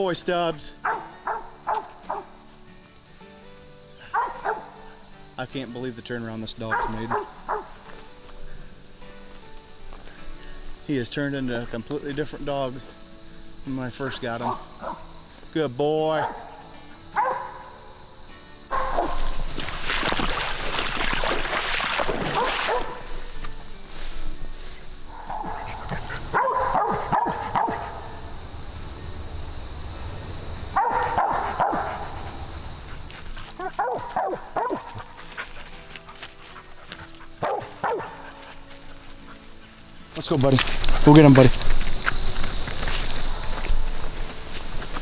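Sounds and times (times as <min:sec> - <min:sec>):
dog barking: 0:00.8 - 0:02.3, 0:04.0 - 0:04.8, 0:06.7 - 0:07.7, 0:14.4 - 0:15.0, 0:16.2 - 0:16.6, 0:17.2 - 0:17.7, 0:18.7 - 0:19.3, 0:22.4 - 0:23.1, 0:25.1 - 0:28.0, 0:30.8 - 0:32.2, 0:33.6 - 0:35.2, 0:37.4 - 0:38.3.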